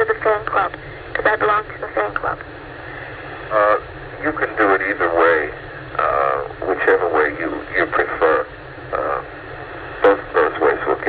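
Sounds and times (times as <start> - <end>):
person talking over a phone: 0.0 - 2.4, 3.5 - 9.3, 10.0 - 11.0
low steady hum: 0.0 - 11.0.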